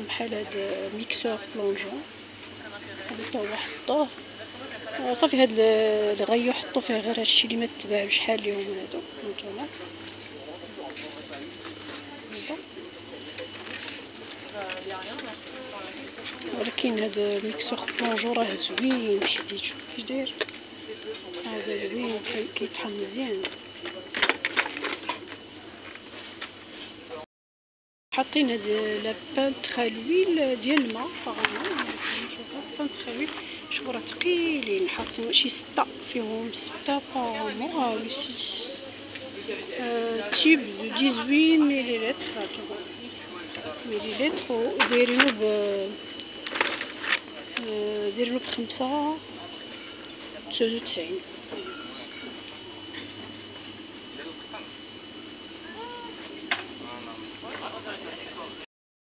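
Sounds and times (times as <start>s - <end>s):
distant voices murmuring: 0.0s - 26.2s, 29.1s - 58.6s
shop background noise: 0.0s - 27.2s, 28.1s - 58.7s
steady hum: 0.0s - 27.2s, 28.1s - 58.7s
faint high whine: 28.2s - 58.7s.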